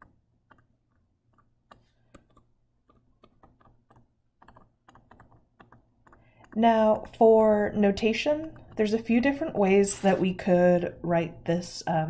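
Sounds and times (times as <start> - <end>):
stylus tapping on tablet screen: 0.0 - 9.9.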